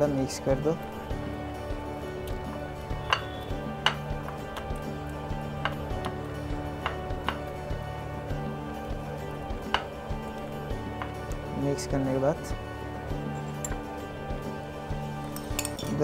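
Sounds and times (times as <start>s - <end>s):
background music with held tones: 0.0s - 16.0s
fingers knocking on ceramic plate: 6.8s - 7.5s.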